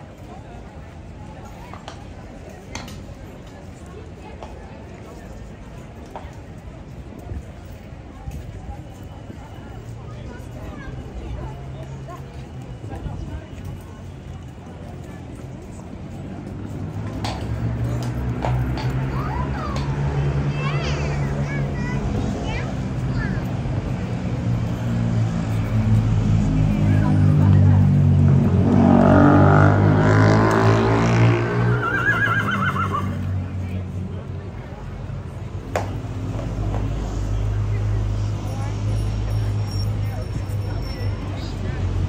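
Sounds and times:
horse whinnying: 0:31.6 - 0:33.2.

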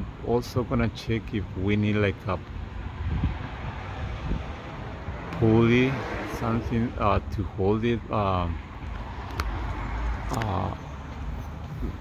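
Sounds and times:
wind buffeting microphone: 0:02.4 - 0:07.6.

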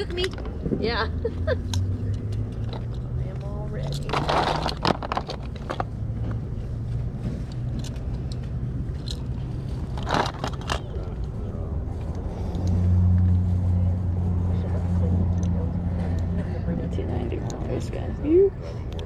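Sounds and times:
low vehicle engine hum: 0:00.0 - 0:19.0
plastic toys clattering: 0:03.8 - 0:06.0, 0:07.5 - 0:11.3.

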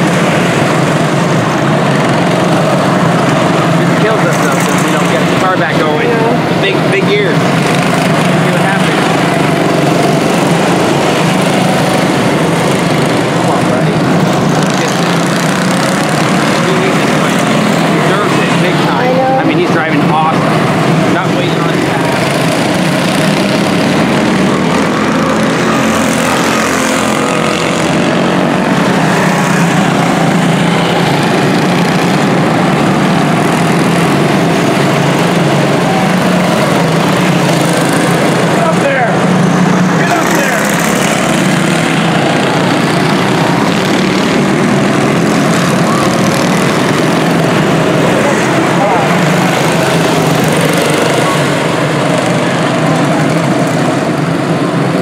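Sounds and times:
small race car engines buzzing: 0:00.0 - 0:55.0.

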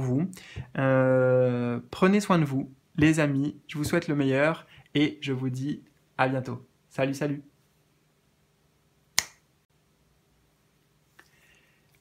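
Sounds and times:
finger snap: 0:09.2 - 0:09.4.

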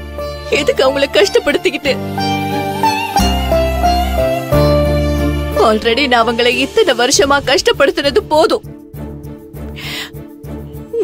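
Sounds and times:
held low music tones: 0:00.0 - 0:11.0.

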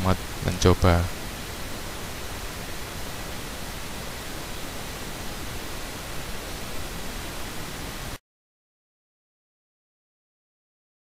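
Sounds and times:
recording background hiss: 0:00.0 - 0:08.2.

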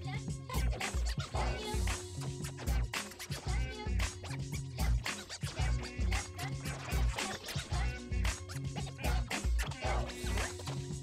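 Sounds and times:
beat-driven dance music: 0:00.1 - 0:11.0
turntable scratching: 0:00.5 - 0:11.0.

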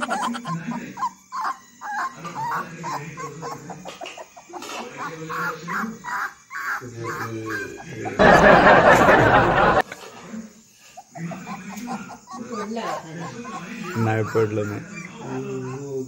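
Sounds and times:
puppy whimpering: 0:00.0 - 0:08.2, 0:11.0 - 0:16.0.

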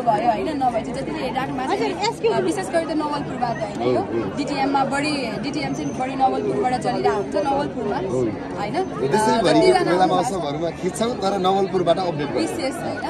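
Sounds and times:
background chatter: 0:00.0 - 0:13.0
people talking: 0:00.0 - 0:13.0.

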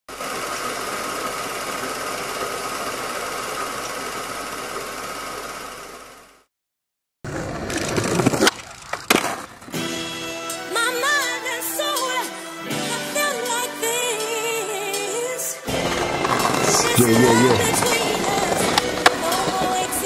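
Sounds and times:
skateboard wheels rolling on pavement: 0:00.1 - 0:06.4, 0:07.3 - 0:09.9, 0:15.7 - 0:20.0
skateboard clacking on ground: 0:07.5 - 0:09.8, 0:16.0 - 0:20.0.

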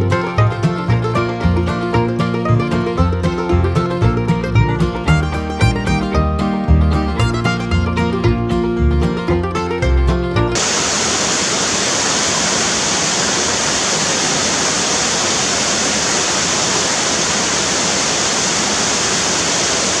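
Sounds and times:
music: 0:00.0 - 0:10.6
waterfall rushing into pool: 0:10.6 - 0:20.0.

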